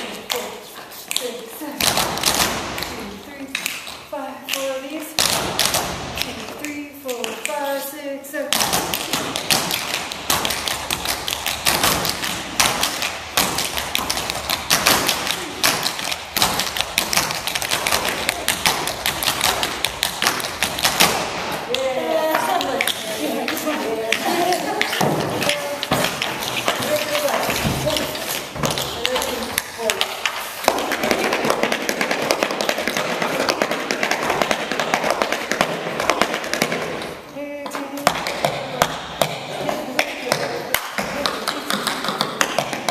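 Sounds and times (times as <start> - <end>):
tap shoes on wooden floor: 8.5 - 37.1.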